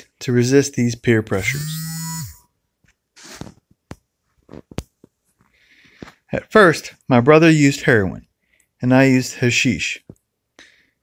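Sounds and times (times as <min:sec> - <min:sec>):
person reading aloud: 0:00.0 - 0:01.7, 0:06.3 - 0:10.1
soft breath: 0:05.4 - 0:06.3, 0:10.6 - 0:11.0.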